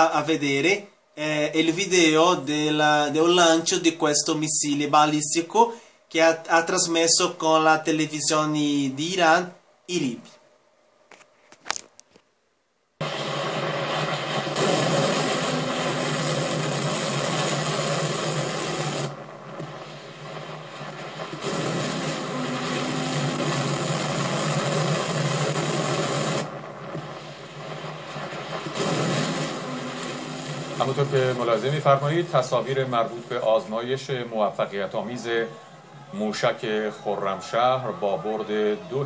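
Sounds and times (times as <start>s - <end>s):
rocket motor roar: 13.0s - 31.8s.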